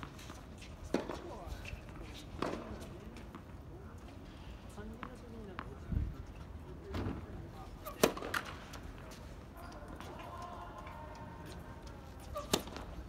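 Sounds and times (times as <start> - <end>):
tennis ball bouncing on hard court: 12.2 - 13.0.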